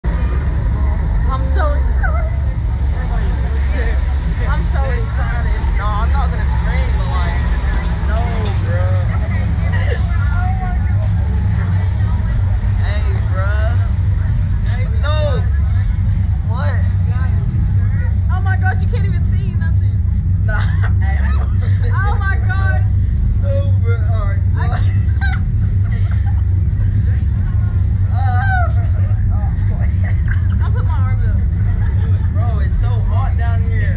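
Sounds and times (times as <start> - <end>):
loud low rumble: 0.0 - 33.9
people chattering: 0.0 - 33.9.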